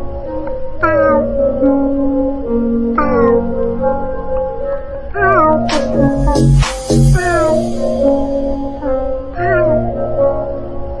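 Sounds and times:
music of sustained notes: 0.0s - 11.0s.

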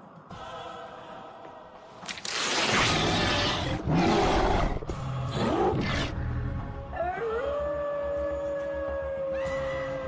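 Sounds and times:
low droning horror music: 2.3s - 10.0s
beast roaring: 2.8s - 6.2s.

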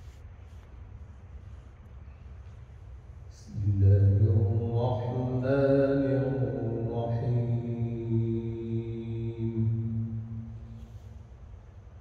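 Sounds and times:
man chanting through a microphone: 3.3s - 11.1s.

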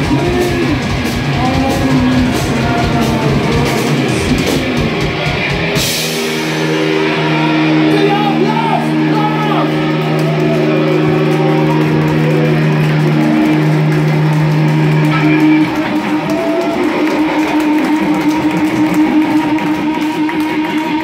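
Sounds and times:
rock band playing loud: 0.0s - 21.0s
strummed guitar: 0.0s - 21.0s
sustained electric guitar notes: 0.0s - 21.0s.

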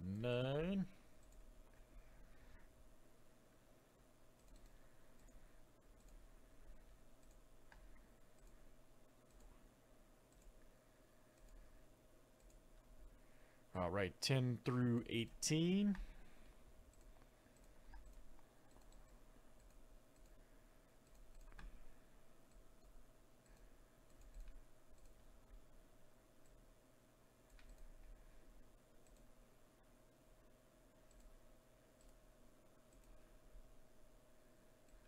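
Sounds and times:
faint steady hum: 0.0s - 35.0s
faint scattered clicks: 0.6s - 1.9s, 4.3s - 9.6s, 10.3s - 11.7s, 12.4s - 12.9s, 15.4s - 25.7s, 27.4s - 28.2s, 29.0s - 29.4s, 31.0s - 33.4s.

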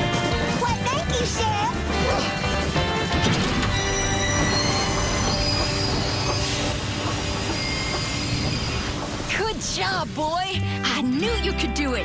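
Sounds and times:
background music: 0.0s - 12.0s
train wheels squealing on rails: 3.6s - 9.3s.

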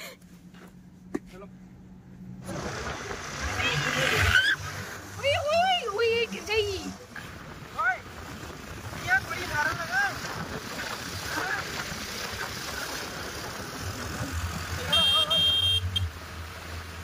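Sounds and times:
motorbike engine and road noise: 0.0s - 17.0s
vehicle horn beeping: 14.8s - 16.1s.

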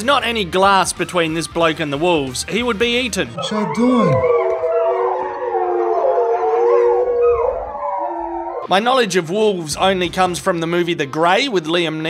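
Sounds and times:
wolves howling: 3.3s - 8.7s.

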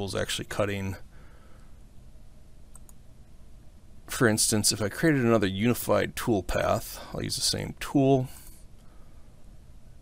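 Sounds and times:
faint room hum: 0.0s - 10.0s
computer mouse clicks: 2.7s - 3.0s.

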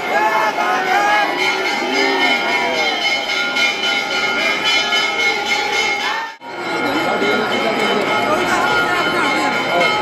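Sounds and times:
crowd voices: 0.0s - 10.0s
temple bells ringing: 0.0s - 10.0s.

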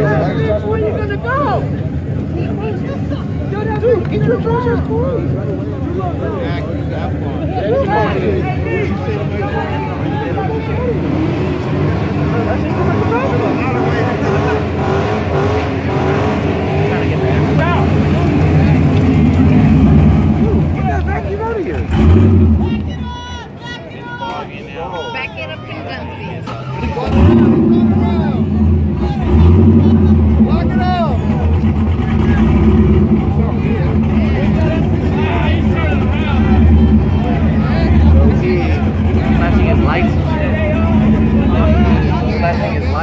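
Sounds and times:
car engines running loud: 0.0s - 43.0s
crowd chatter and calls: 0.0s - 43.0s.

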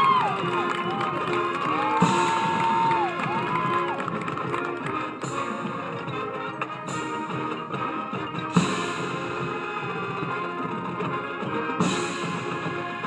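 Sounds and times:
marching band playing: 0.0s - 13.0s.

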